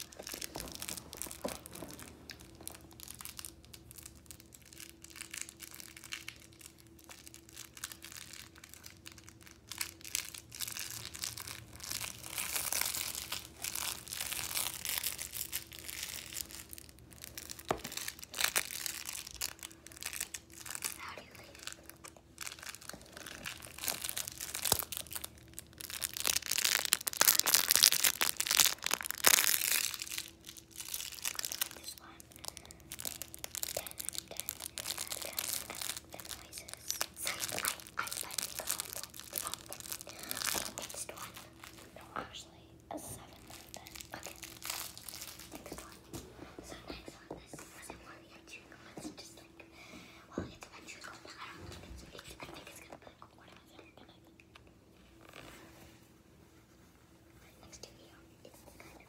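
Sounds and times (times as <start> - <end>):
rustling and crinkling handling noise: 0.0 - 59.0.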